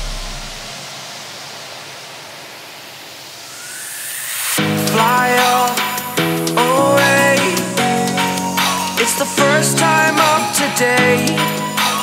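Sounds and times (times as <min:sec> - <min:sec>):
deep bass tail: 0:00.0 - 0:00.7
white-noise sweep: 0:00.0 - 0:07.8
faint rising tone: 0:02.8 - 0:05.9.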